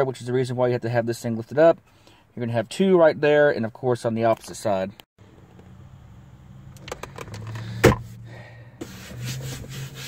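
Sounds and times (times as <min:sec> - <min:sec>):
hand rubbing over pad: 0:08.8 - 0:10.0.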